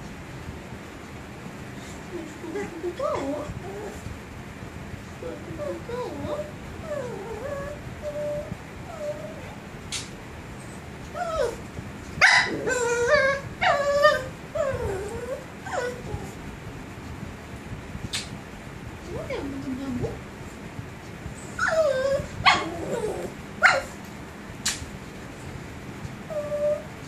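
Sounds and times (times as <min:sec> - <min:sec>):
puppy whining: 0:02.6 - 0:04.1, 0:05.6 - 0:09.6, 0:10.6 - 0:16.4, 0:21.4 - 0:24.0, 0:26.3 - 0:27.0
puppy yipping: 0:12.2 - 0:16.0.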